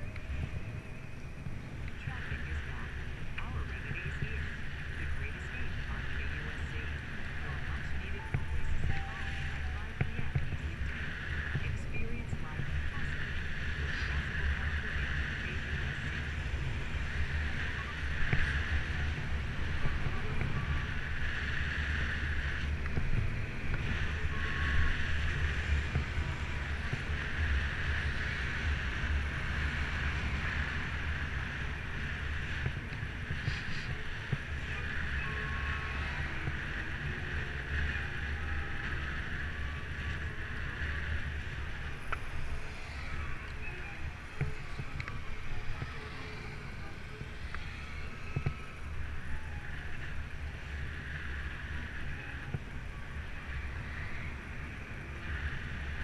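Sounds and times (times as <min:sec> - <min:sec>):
tyre and road noise: 0:00.0 - 0:56.0
wind buffeting microphone: 0:00.0 - 0:56.0.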